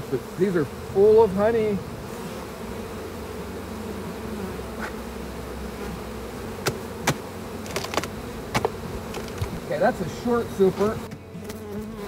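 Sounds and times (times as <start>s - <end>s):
bees humming: 0.0s - 12.0s
knocks on wooden hive boxes: 5.9s - 9.6s.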